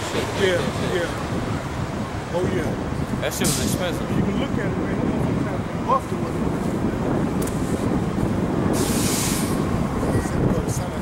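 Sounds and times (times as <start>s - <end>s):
street traffic rumble: 0.0s - 11.0s
air hiss: 8.8s - 9.6s.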